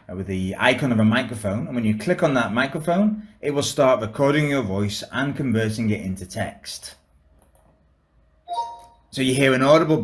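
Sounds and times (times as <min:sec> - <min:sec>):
two-note chime: 0:08.5 - 0:09.1.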